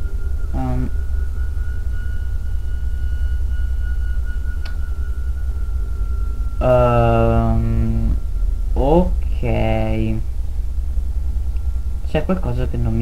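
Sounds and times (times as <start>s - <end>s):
faint high-pitched tone: 0.0s - 13.0s
steady low hum: 0.0s - 13.0s.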